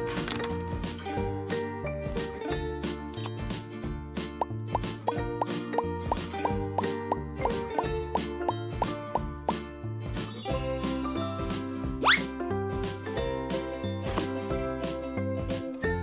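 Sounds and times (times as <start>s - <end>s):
upbeat background music: 0.0s - 16.0s
sparkly chime effect: 10.0s - 12.1s.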